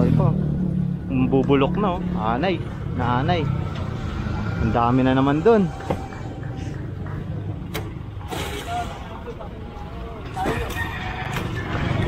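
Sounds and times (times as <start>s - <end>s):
truck engine idling: 0.7s - 12.0s.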